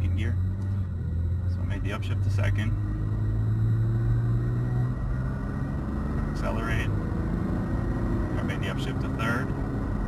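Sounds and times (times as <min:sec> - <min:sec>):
engine drone inside car: 0:00.0 - 0:10.0
road rumble: 0:00.0 - 0:10.0.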